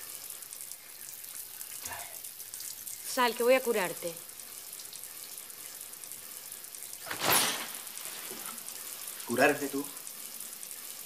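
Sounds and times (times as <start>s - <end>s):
shower water running: 0.0s - 11.0s.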